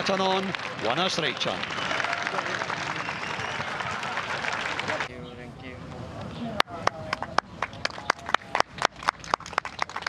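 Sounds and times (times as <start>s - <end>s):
people clapping: 0.0s - 5.1s, 6.6s - 10.0s.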